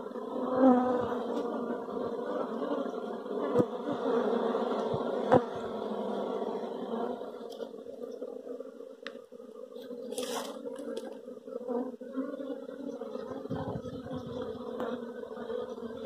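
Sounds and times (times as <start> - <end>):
honeybees buzzing: 0.0 - 16.0.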